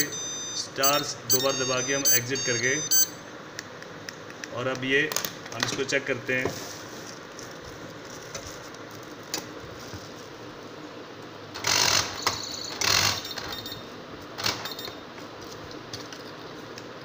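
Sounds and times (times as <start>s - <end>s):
high beep: 0.0s - 3.2s
door lock motor bursts: 11.5s - 13.7s, 14.4s - 14.9s.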